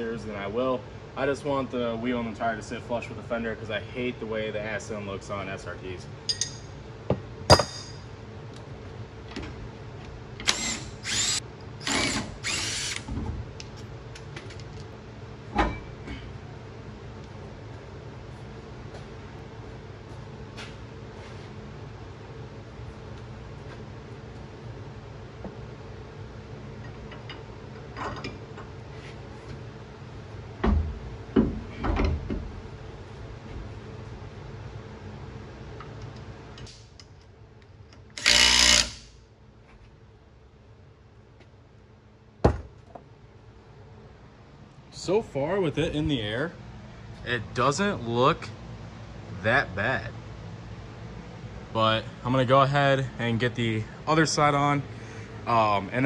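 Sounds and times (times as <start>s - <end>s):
steady low hum: 0.0s - 56.0s
power tool whirring: 10.4s - 13.1s, 38.2s - 39.1s.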